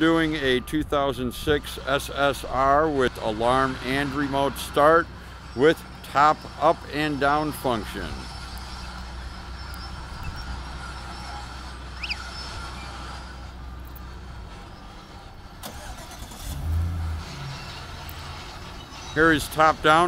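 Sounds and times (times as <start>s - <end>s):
car engine idling: 4.7s - 20.0s.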